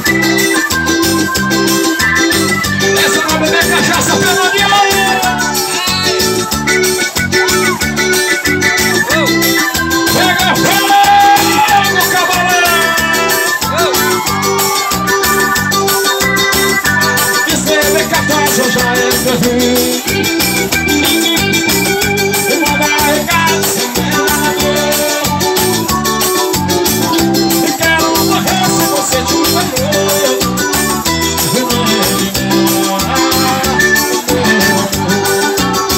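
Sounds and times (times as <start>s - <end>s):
live band dance music: 0.0s - 35.9s.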